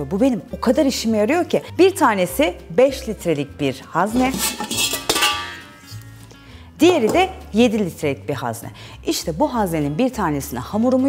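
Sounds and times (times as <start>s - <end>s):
metal bowls clinking: 4.0s - 6.0s.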